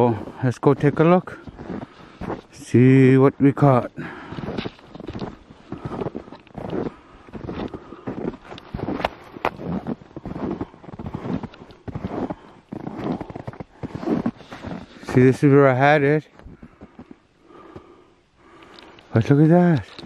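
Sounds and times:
footsteps crunching through snow: 0:00.0 - 0:17.9
sharp clicks: 0:18.6 - 0:20.0.

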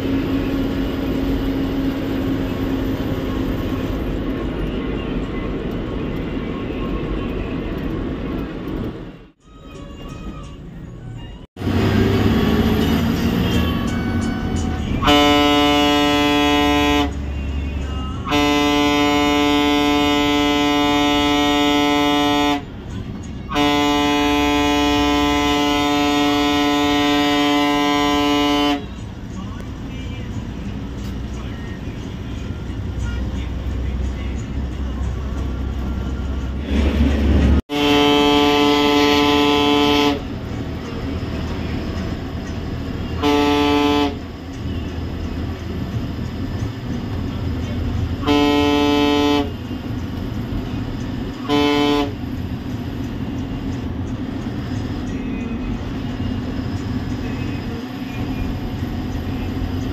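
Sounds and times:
diesel bus engine running: 0:00.0 - 0:59.9
air horn blasts: 0:13.2 - 0:22.8, 0:23.4 - 0:29.0, 0:37.6 - 0:40.8, 0:43.0 - 0:44.9, 0:48.0 - 0:50.0, 0:51.3 - 0:52.4.

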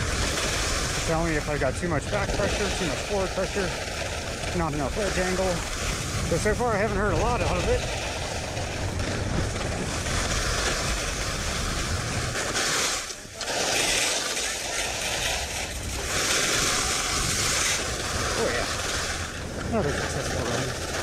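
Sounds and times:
skis scraping on snow: 0:00.0 - 0:21.0
wind buffeting microphone: 0:00.0 - 0:21.0.

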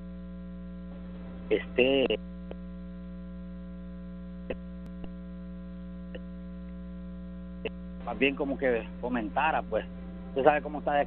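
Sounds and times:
mains hum on telephone line: 0:00.0 - 0:11.0.

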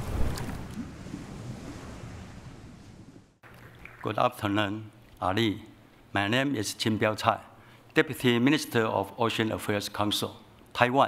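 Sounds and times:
ocean waves: 0:00.0 - 0:04.2.

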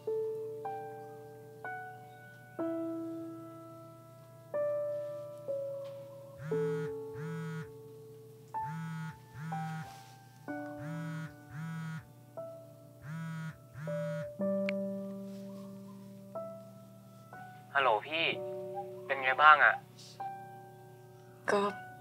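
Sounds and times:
soft piano music: 0:00.0 - 0:22.0
mobile phone ringing: 0:06.4 - 0:07.7, 0:08.6 - 0:10.0, 0:10.8 - 0:12.0, 0:13.0 - 0:14.4.

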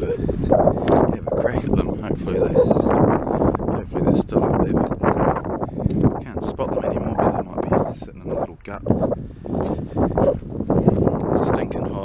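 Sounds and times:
man speaking: 0:00.0 - 0:00.2, 0:01.0 - 0:02.9, 0:06.2 - 0:09.1
wind on microphone: 0:00.0 - 0:12.0.

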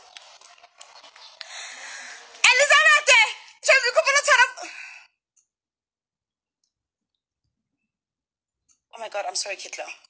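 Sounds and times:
woman's high-pitched voice: 0:02.4 - 0:04.7.

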